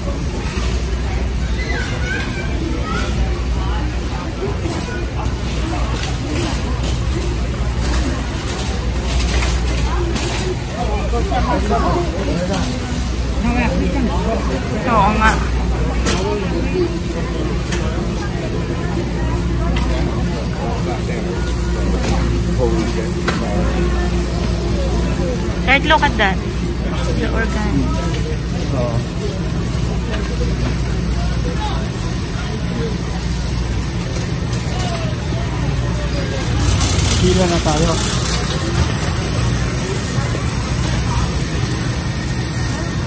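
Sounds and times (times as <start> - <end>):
chatter of shoppers' voices: 0.0 - 43.0
shopping cart rolling on concrete: 0.0 - 43.0.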